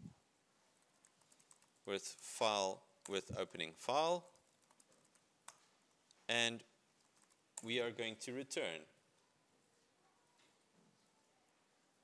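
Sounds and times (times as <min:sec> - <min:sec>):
computer keyboard typing: 0:00.8 - 0:01.9, 0:04.1 - 0:05.6, 0:07.0 - 0:07.7.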